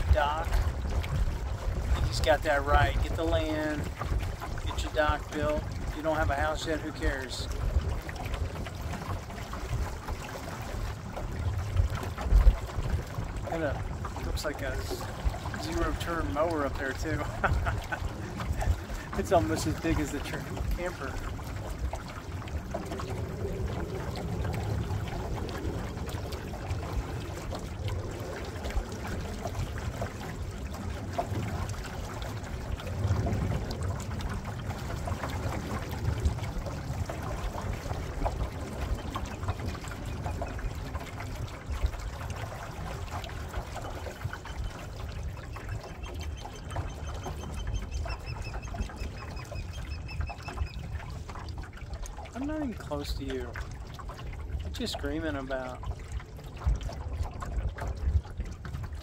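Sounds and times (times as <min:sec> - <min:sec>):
wind on microphone: 0:00.0 - 0:52.5, 0:55.8 - 0:59.0
water sloshing along boat hull: 0:00.0 - 0:59.0.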